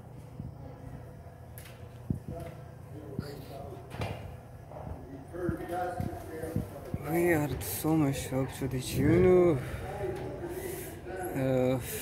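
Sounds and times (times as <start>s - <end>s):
low steady hum: 0.0s - 12.0s
people talking: 2.1s - 4.1s, 4.7s - 12.0s.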